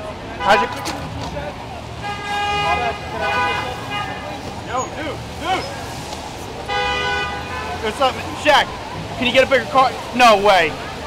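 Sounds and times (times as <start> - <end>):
low traffic rumble: 0.0 - 11.0.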